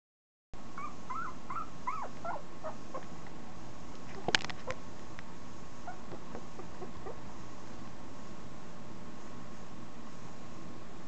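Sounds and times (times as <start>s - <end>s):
puppy whimpering: 0.8s - 3.2s, 5.8s - 7.2s.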